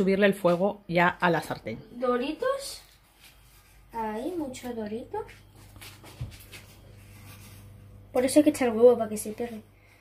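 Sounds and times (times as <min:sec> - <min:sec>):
steady low hum: 0:00.6 - 0:10.0.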